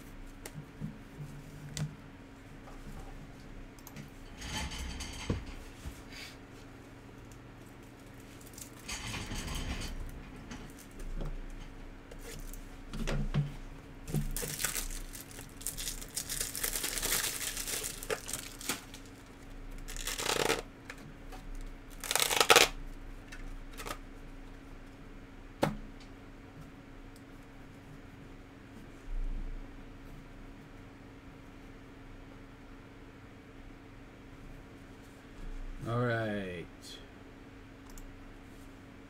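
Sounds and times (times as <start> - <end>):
foil wrapper tearing and crumpling: 14.3 - 20.7, 21.9 - 22.8.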